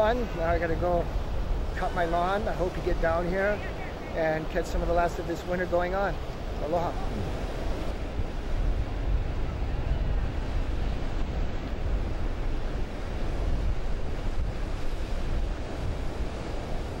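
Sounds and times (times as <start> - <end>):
ocean surf breaking: 0.0 - 17.0
wind buffeting microphone: 0.0 - 17.0.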